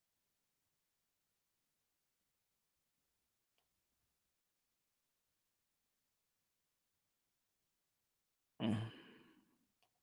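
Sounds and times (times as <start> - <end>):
man sighing: 8.6 - 9.4.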